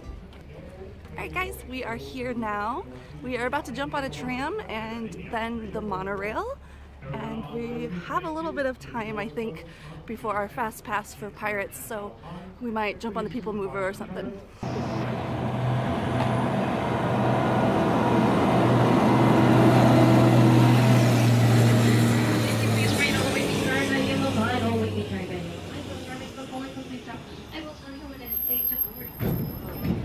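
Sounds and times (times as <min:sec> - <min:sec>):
tram engine humming: 0:14.6 - 0:30.0.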